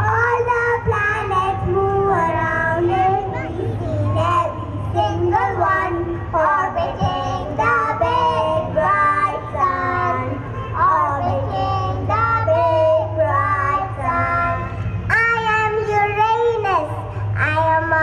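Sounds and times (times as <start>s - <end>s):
girl singing through microphone: 0.0s - 18.0s.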